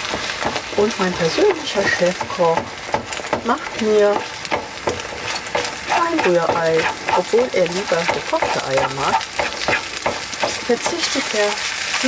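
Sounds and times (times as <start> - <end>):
eggs frying: 0.0 - 12.0
wooden spatula scraping frying pan: 0.0 - 12.0.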